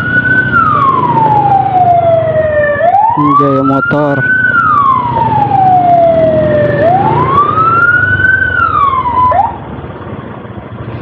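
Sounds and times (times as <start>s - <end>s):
electronic siren wailing: 0.0s - 9.6s
motorcycle engine: 0.0s - 11.0s
road noise: 0.0s - 11.0s.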